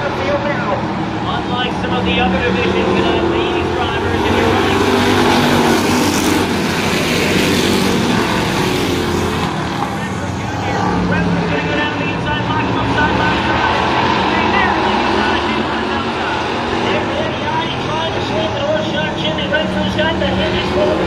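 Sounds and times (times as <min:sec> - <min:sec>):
race car engines roaring: 0:00.0 - 0:21.0.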